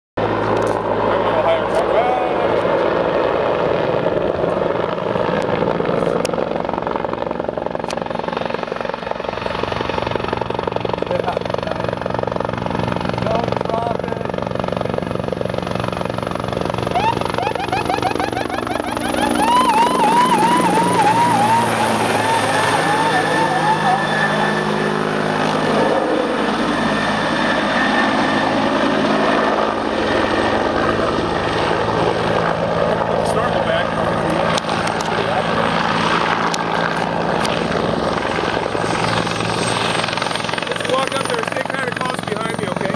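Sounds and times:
helicopter rotor beat: 0.2s - 42.9s.

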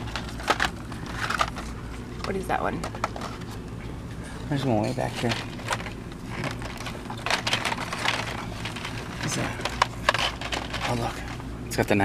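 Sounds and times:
plastic blister packs rustling: 0.0s - 3.6s, 4.9s - 11.5s
low background hum: 0.0s - 12.0s.

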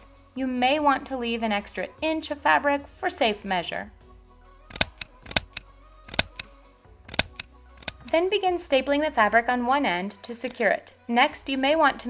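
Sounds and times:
quiet background music: 0.0s - 12.0s
shears snipping fabric: 4.7s - 6.5s, 7.1s - 8.2s.

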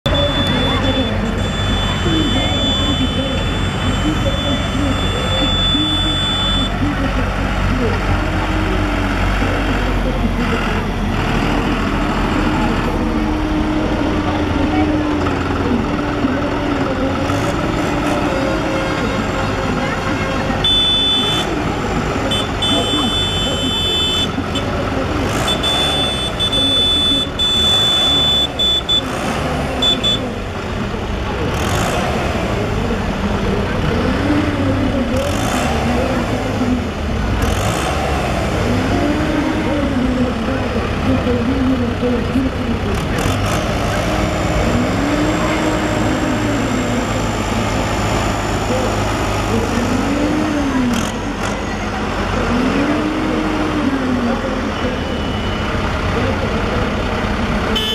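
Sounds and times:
tractor diesel engines: 0.0s - 57.9s
voices: 0.0s - 57.9s.

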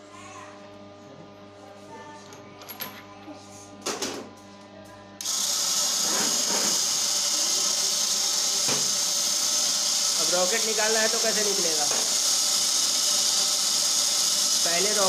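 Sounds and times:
machine hissing whir: 5.2s - 15.0s.

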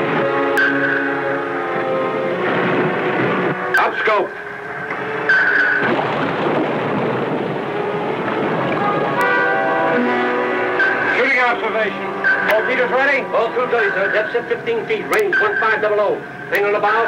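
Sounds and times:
dramatic orchestral music: 0.0s - 6.4s, 7.3s - 16.5s
steady rushing noise: 0.0s - 17.0s.

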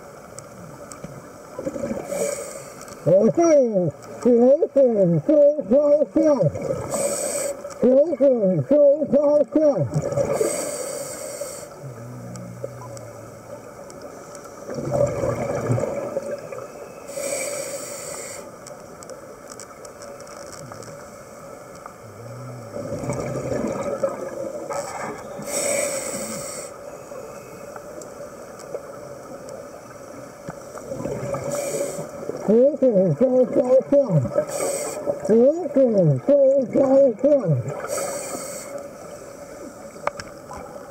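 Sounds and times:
faint hum: 0.0s - 40.9s
low underwater wash: 0.0s - 40.9s
regulator bubbles hissing: 9.8s - 13.6s, 14.6s - 18.5s, 22.0s - 26.8s, 30.8s - 39.2s
hissing exhaled bubbles: 9.9s - 13.0s, 14.7s - 16.4s, 22.0s - 26.7s.

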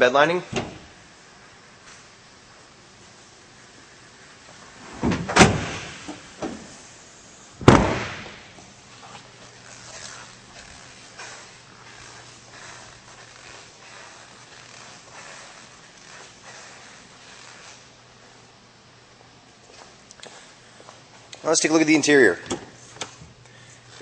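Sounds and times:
bed cover slamming shut: 4.9s - 6.7s, 7.6s - 8.4s.

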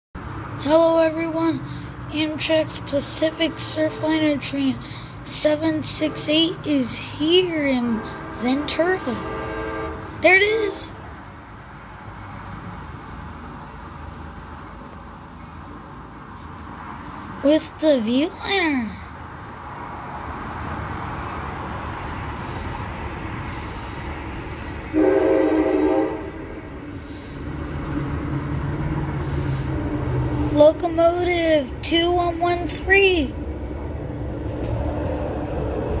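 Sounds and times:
distant passenger train approaching: 0.2s - 36.0s
freeway traffic rumble: 0.2s - 36.0s.

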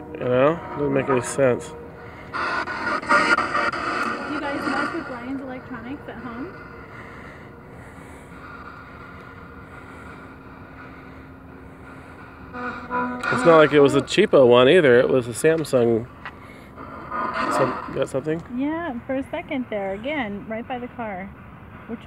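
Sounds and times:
radio static hiss: 0.0s - 18.8s
faint hum: 0.0s - 22.0s
choppy radio voice fragments: 0.3s - 1.7s, 2.3s - 6.3s, 13.2s - 14.3s, 17.3s - 18.2s.

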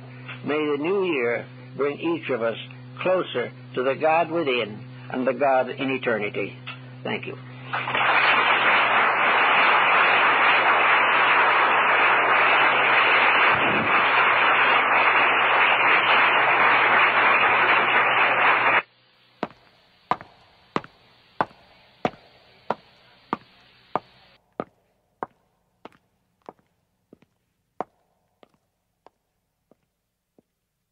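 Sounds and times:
audience applauding: 7.7s - 18.8s.

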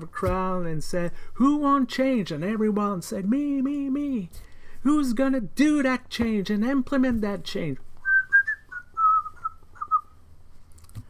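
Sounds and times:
man whistling descending notes: 8.0s - 10.2s.

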